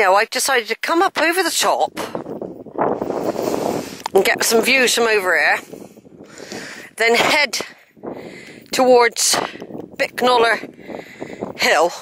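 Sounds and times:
wind buffeting microphone: 1.1 - 12.0.

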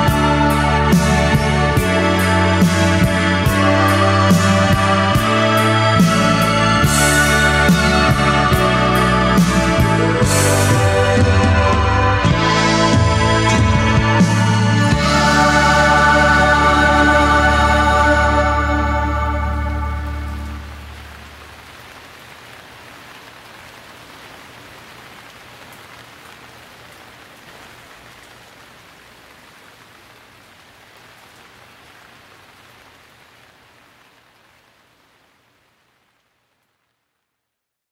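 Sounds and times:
rain hissing: 0.0 - 37.5.

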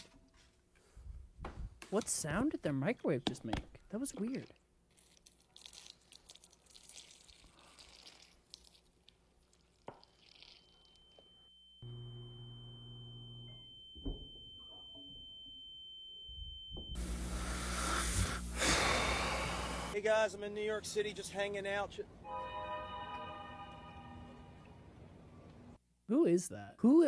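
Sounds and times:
steady high whine: 11.6 - 20.0
low electrical hum: 16.3 - 20.0
loud hiss: 17.0 - 20.0.

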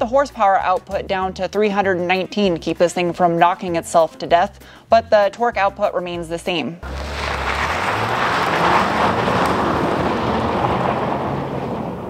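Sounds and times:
car engine driving away: 6.8 - 12.0
tyres crunching over gravel: 6.8 - 12.0.

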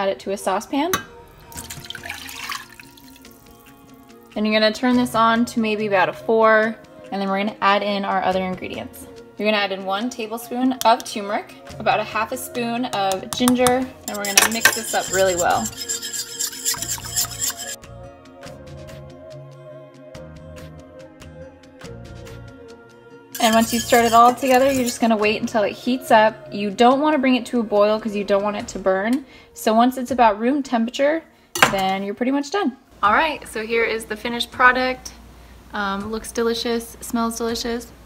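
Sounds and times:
soft background music: 0.0 - 38.0
milk pouring into saucepan: 1.3 - 3.8
whisk scraping metal saucepan: 13.0 - 17.8, 23.4 - 25.4.

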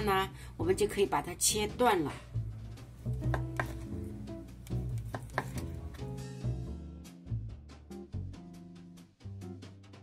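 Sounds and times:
music with plucked bass line: 1.5 - 10.0
knife tapping cutting board: 3.2 - 4.0, 4.6 - 6.0
knife slicing meat: 4.6 - 5.8.

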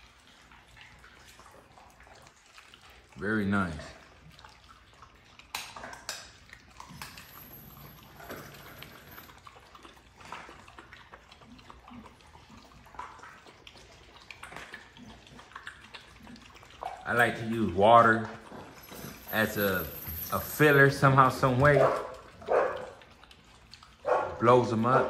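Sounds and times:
dog chewing and lapping: 0.0 - 25.0.

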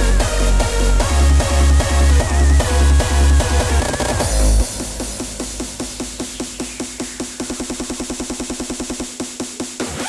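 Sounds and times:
deep bass: 0.0 - 9.2
hardstyle dance music: 0.0 - 10.0.

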